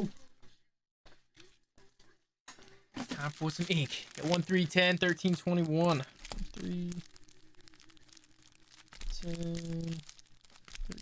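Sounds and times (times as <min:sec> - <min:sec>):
wrapper crinkling and tearing: 0:03.0 - 0:11.0.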